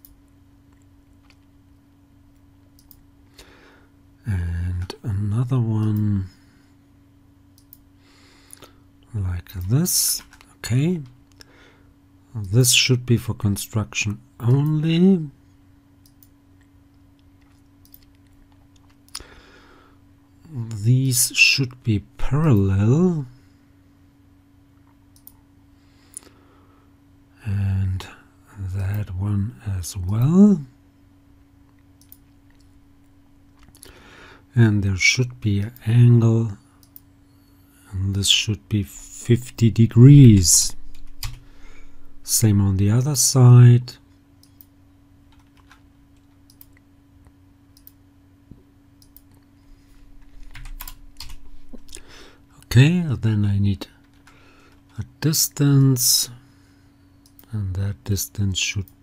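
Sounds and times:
low electrical hum: 0.0s - 59.0s
computer mouse clicks: 2.8s - 3.0s, 7.6s - 7.8s, 17.4s - 19.0s, 25.1s - 25.4s, 32.0s - 32.8s, 44.4s - 46.8s, 47.7s - 48.0s, 49.0s - 49.5s
keyboard and mouse clicks: 2.8s - 3.0s, 17.4s - 19.0s.

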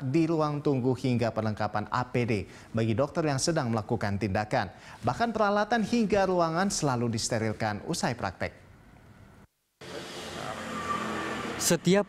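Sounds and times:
road traffic rush: 9.8s - 12.0s.

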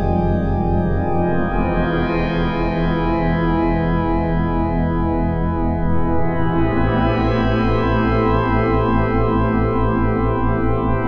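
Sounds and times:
pulsing bass: 0.0s - 11.0s.

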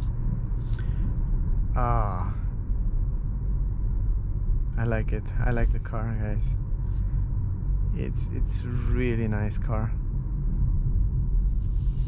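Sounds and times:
road and tyre rumble: 0.0s - 12.0s.

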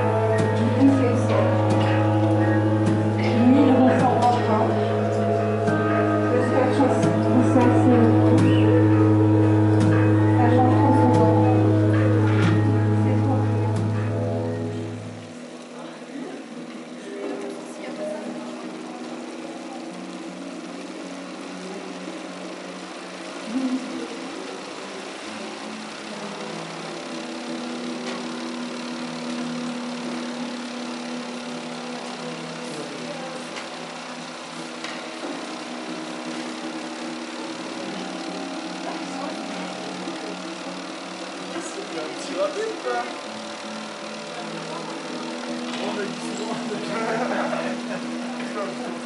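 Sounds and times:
sustained drone: 0.0s - 49.0s.

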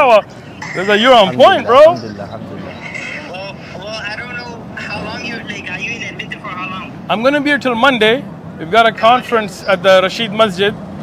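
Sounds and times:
man talking over phone speaker: 0.0s - 10.7s
city traffic noise: 0.0s - 11.0s.

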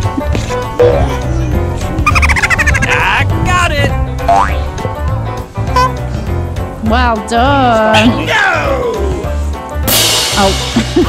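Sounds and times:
upbeat music with steady beat: 0.0s - 11.0s.

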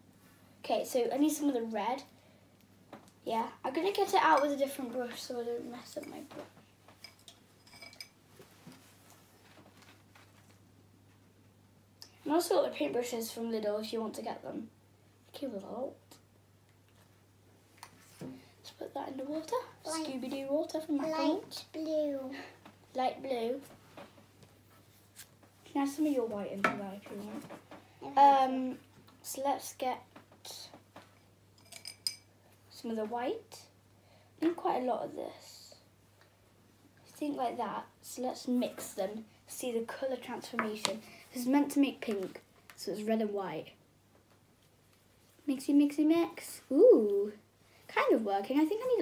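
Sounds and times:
girl speaking: 0.6s - 2.1s, 3.2s - 6.5s, 18.7s - 23.7s, 28.0s - 30.8s, 34.4s - 35.9s, 37.1s - 43.8s, 45.5s - 49.0s
faint clicks and clinks: 7.0s - 8.2s, 31.6s - 32.3s.

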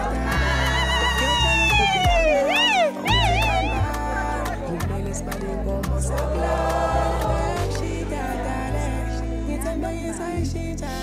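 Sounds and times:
high voice singing: 0.0s - 11.0s
steady bass line: 0.0s - 11.0s.

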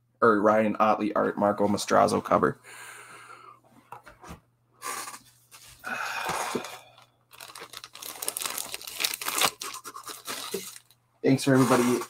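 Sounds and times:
plastic bag crinkling: 7.3s - 11.0s.

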